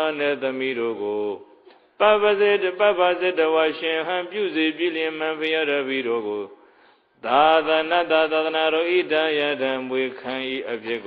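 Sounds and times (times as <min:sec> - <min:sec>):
man chanting: 0:00.0 - 0:06.6, 0:07.2 - 0:11.0.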